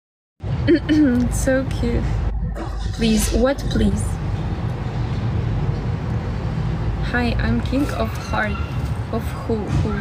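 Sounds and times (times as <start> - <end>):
street background rumble: 0.4 - 10.0.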